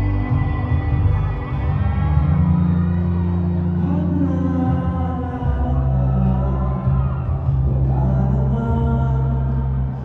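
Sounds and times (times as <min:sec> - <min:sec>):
deep bass music over sound system: 0:00.0 - 0:10.0.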